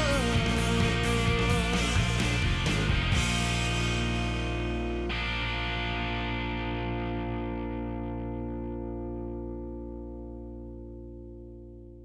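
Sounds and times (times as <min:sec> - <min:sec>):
band low end: 0:00.0 - 0:12.0
distorted electric guitar chord: 0:00.0 - 0:12.0.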